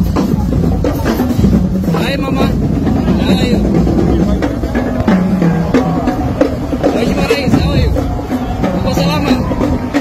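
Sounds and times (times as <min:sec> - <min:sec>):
loud steady low rumble: 0:00.0 - 0:09.3.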